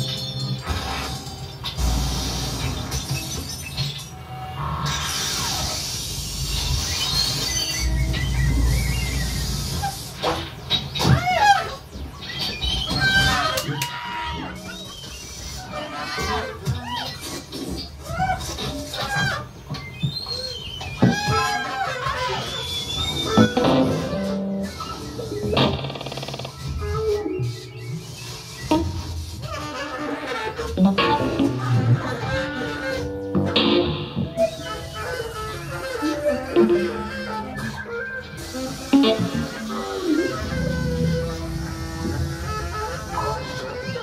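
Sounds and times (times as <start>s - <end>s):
keyboard: 0.0s - 17.8s, 18.4s - 44.0s
experimental electronic music: 20.4s - 44.0s
electric guitar: 23.3s - 26.2s, 35.9s - 42.6s
saxophone: 28.6s - 44.0s.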